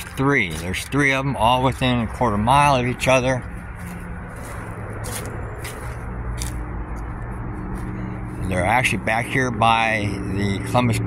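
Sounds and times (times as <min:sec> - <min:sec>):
distant traffic hum: 0:00.0 - 0:11.0
footsteps crunching on dry grass: 0:00.0 - 0:11.0.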